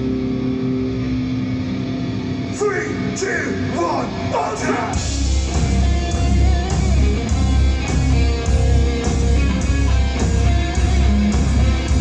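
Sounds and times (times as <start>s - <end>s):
distorted guitar and bass chord: 0.0s - 12.0s.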